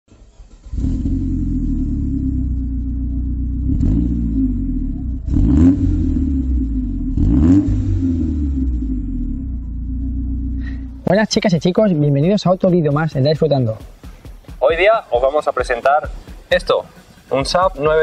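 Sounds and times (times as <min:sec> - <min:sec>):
car engine revving: 0:00.1 - 0:11.8.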